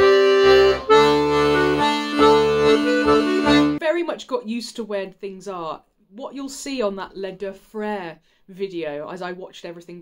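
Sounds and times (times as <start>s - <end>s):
button accordion playing: 0.0s - 3.8s.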